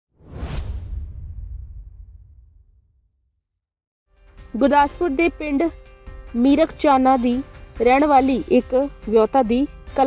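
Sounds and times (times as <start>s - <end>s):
whoosh swish: 0.2s - 3.1s
deep low rumble: 0.6s - 3.2s.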